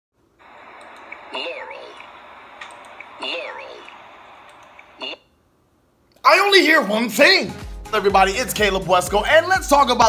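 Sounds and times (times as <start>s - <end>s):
recorded voice clip: 0.4s - 5.2s, 6.1s - 10.0s
steady hiss: 0.4s - 5.2s
computer mouse clicking: 0.5s - 5.2s.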